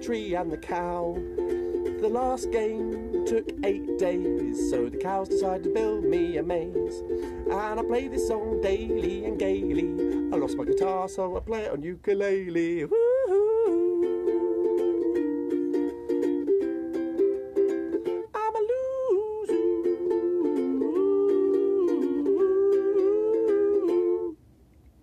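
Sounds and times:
ukulele strumming: 0.0 - 24.4
man humming: 12.9 - 15.4, 19.2 - 24.4.

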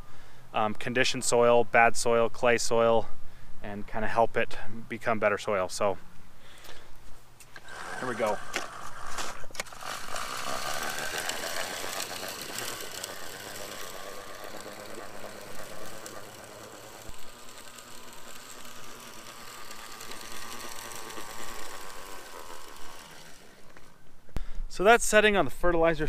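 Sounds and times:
spreader rattling on a lawn: 7.6 - 24.0.

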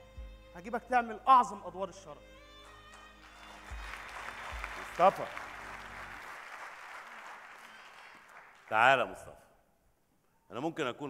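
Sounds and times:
audience applauding: 2.6 - 9.0.

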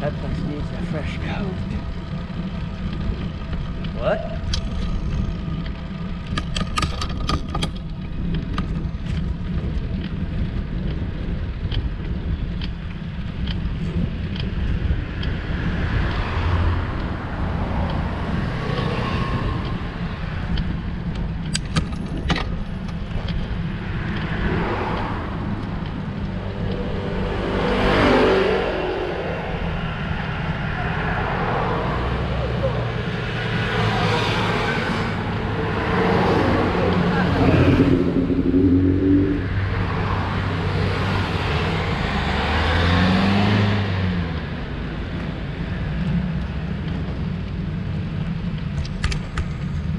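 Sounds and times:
steady low rumble: 0.0 - 42.2
cars passing close by: 13.0 - 21.5, 22.7 - 49.9.

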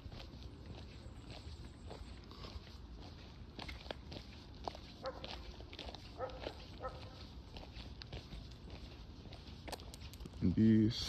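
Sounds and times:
dog barking faintly: 5.0 - 5.4, 6.2 - 7.3.

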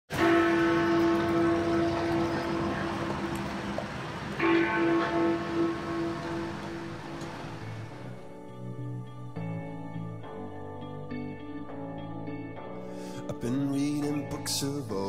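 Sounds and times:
clock bell striking: 0.1 - 8.2.

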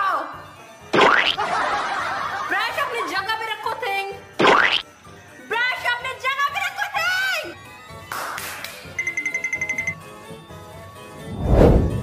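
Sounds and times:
short whooshing swish: 11.2 - 12.0.

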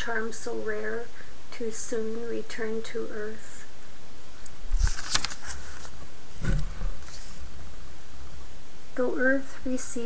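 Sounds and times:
book page turning: 4.7 - 7.4
soft low thud: 6.4 - 7.0.

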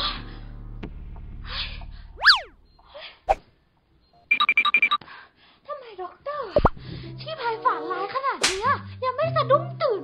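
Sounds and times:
whistling glide: 2.2 - 2.6
ringing beeps: 4.0 - 5.0.

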